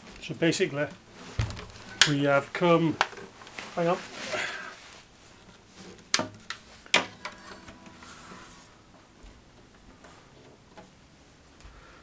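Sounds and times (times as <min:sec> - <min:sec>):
knocks on acoustic guitar: 0:01.4 - 0:02.0
guitar strings ringing: 0:01.4 - 0:02.4, 0:07.0 - 0:08.9.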